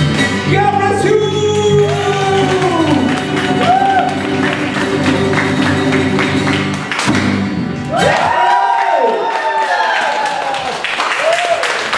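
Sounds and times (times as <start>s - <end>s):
acoustic guitar strumming: 0.0s - 8.0s.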